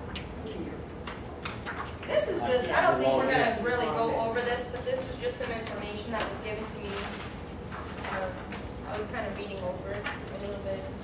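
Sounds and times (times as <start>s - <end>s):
paper rustling: 5.2s - 11.0s.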